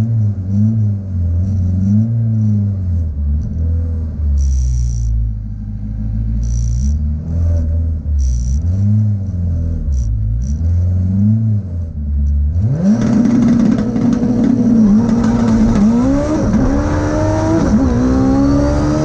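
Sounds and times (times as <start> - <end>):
turbocharged car engine revving: 0.0 - 19.0.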